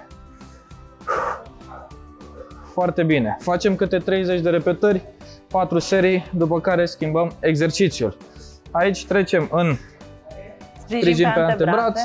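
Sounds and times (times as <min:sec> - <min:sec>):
background music chords: 0:00.0 - 0:12.0
forceful voiced exhale: 0:01.0 - 0:01.5.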